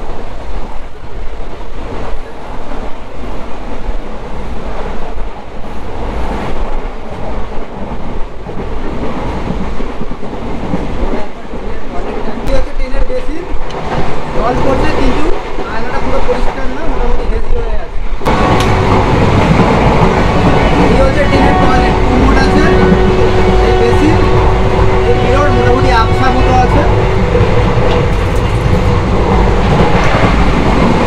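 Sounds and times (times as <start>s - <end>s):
train rumble and rattle: 0.0s - 31.0s
passengers' voices: 1.7s - 31.0s.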